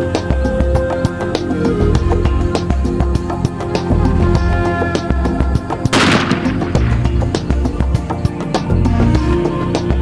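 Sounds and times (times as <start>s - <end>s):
background music: 0.0s - 10.0s
rifle shot: 5.9s - 7.2s.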